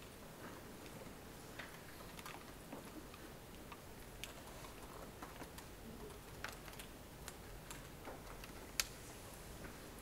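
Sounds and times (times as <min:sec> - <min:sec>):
laptop keys clicking: 0:01.6 - 0:09.0.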